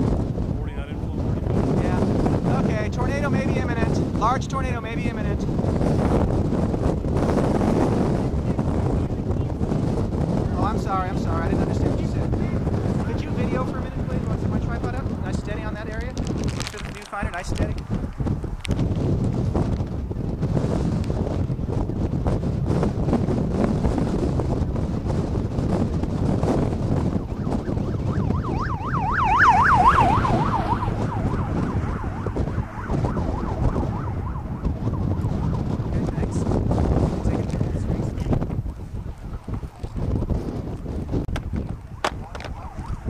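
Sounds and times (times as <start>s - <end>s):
wind buffeting microphone: 0.0s - 43.0s
siren warbling: 27.2s - 35.7s, 41.6s - 43.0s.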